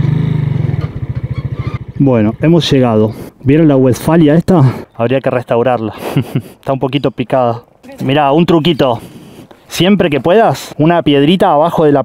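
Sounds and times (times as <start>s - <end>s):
motorcycle engine puttering: 0.0s - 2.7s.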